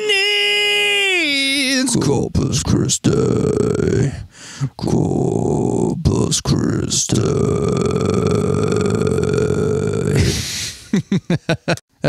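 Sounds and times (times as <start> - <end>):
man's vocal fry growl: 1.9 - 10.9.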